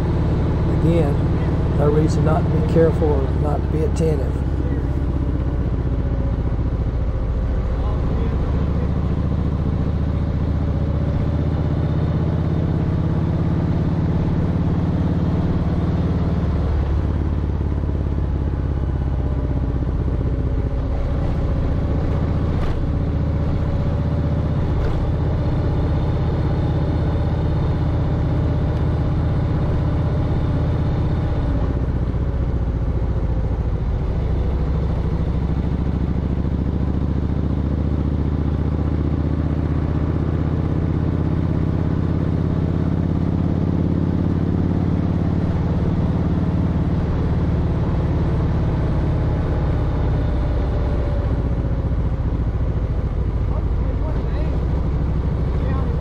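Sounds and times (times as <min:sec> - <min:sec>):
motorcycle engine cruising: 0:00.0 - 0:56.0
road noise: 0:00.0 - 0:56.0.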